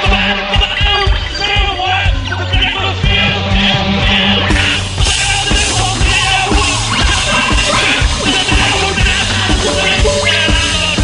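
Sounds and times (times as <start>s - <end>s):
kick drum beat: 0.0s - 11.0s
rock band playing live: 0.0s - 11.0s.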